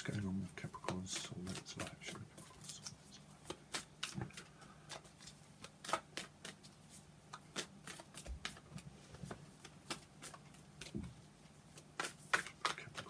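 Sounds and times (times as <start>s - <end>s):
cards being shuffled: 0.0s - 13.0s.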